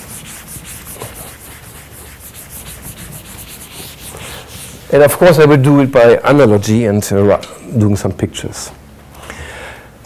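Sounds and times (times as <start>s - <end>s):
soft rubbing strokes: 0.0s - 5.5s.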